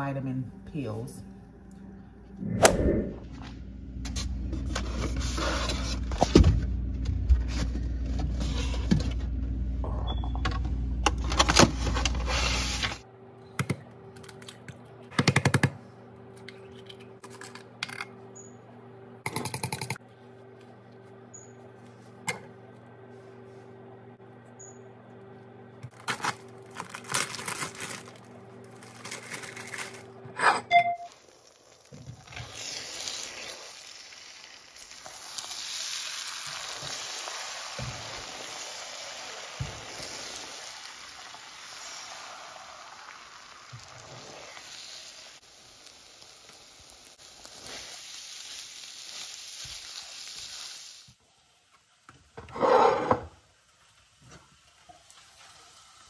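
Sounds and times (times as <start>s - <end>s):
steady tone: 0.4s - 4.0s
eggs sizzling in a frying pan: 31.1s - 52.4s, 53.3s - 56.0s
spatula scraping a pan: 52.5s - 53.2s.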